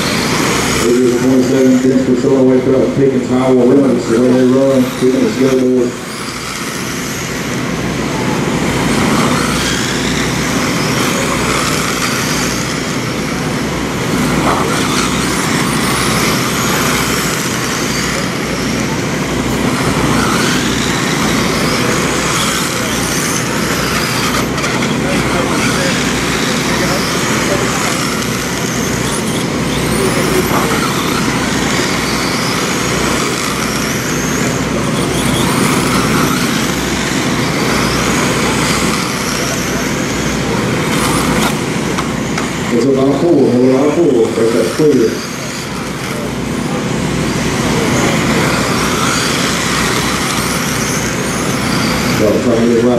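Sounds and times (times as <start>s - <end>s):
constant noise: 0.0s - 52.9s
rc car motors whining: 0.0s - 52.9s.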